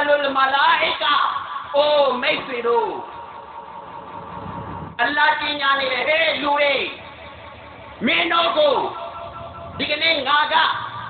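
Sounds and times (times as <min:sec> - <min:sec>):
low engine-like rumble: 0:02.6 - 0:11.0.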